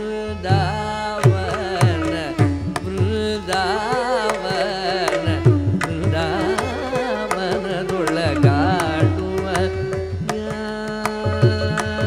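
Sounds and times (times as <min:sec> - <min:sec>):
man singing ornamented melody: 0:00.0 - 0:12.0.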